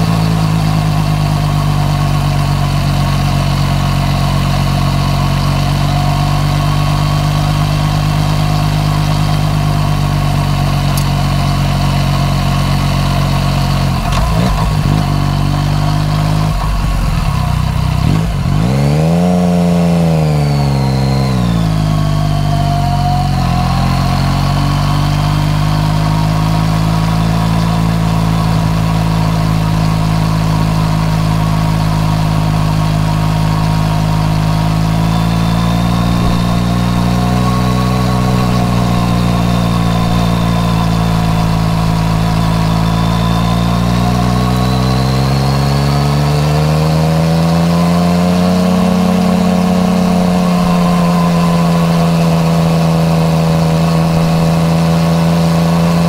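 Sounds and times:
motorcycle engine running: 0.0 - 56.0.

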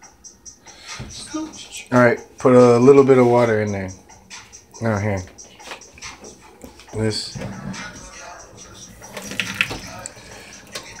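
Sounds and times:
faucet running water into glass: 9.1 - 9.8.

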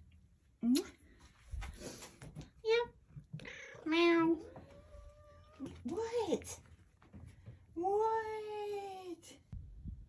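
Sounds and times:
cats meowing: 3.4 - 5.8.

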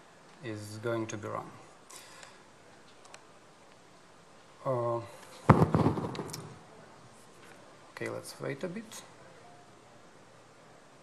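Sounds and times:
crackling knocks: 5.5 - 6.6.

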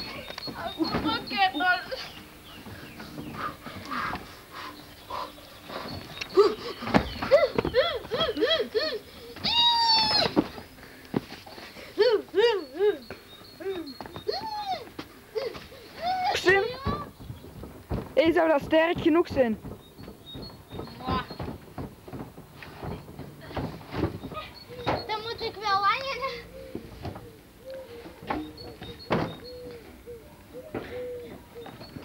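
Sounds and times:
child shrieking: 7.8 - 10.4, 14.3 - 14.9, 16.0 - 16.4
children calling and shouting: 11.6 - 17.2, 24.2 - 29.0.

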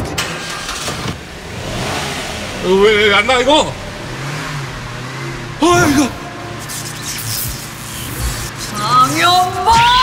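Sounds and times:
car engine humming: 0.0 - 10.0
man shouting: 5.6 - 6.5.

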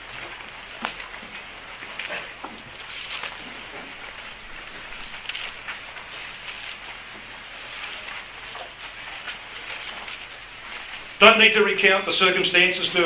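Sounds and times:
pages turning rustle: 1.9 - 11.4.

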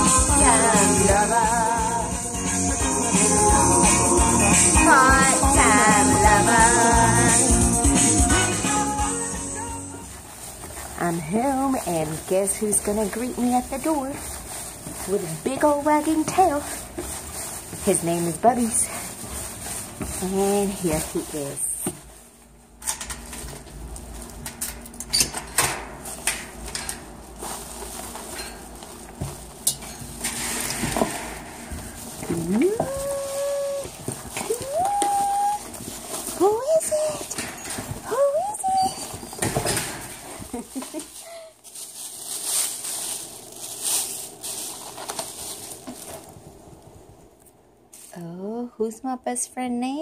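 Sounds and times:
metal door rattling open: 24.4 - 27.2, 30.0 - 31.7, 39.4 - 40.2
small dog whining: 32.4 - 35.8, 37.1 - 39.6.

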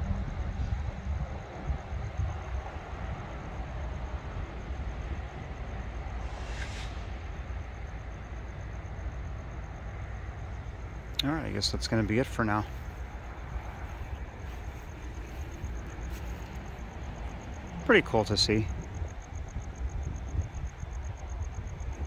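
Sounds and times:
freight train rumble: 0.0 - 22.0
short hiss: 6.2 - 7.3.

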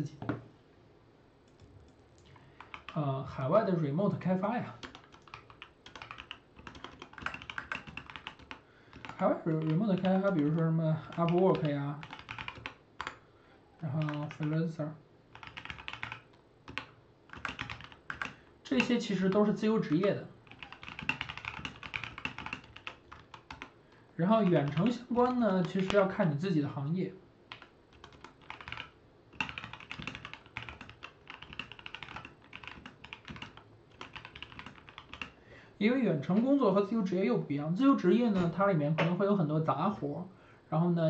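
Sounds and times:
typing on computer keyboard: 2.6 - 3.0, 4.8 - 13.2, 13.9 - 14.6, 15.3 - 26.1, 27.5 - 35.4.

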